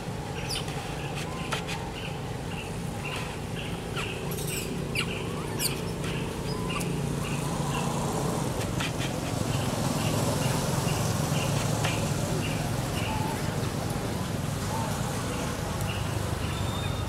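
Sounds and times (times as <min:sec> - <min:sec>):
birds chirping: 0:00.1 - 0:17.0.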